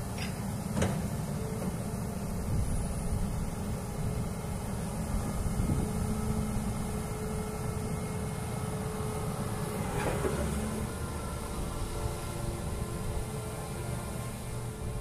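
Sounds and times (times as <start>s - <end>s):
excavator diesel engine: 0.0s - 15.0s
thin steady whine: 1.2s - 10.0s.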